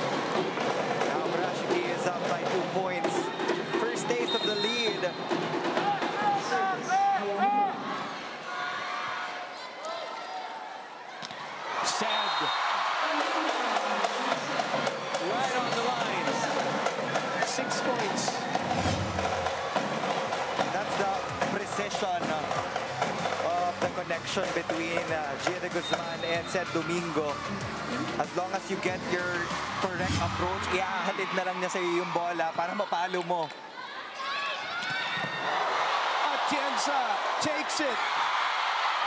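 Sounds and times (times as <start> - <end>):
crowd cheering and shouting: 0.0 - 39.0
music: 14.0 - 30.8.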